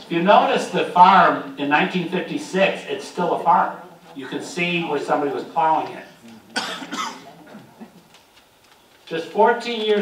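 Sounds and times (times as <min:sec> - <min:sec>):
person coughing: 0:06.5 - 0:07.6.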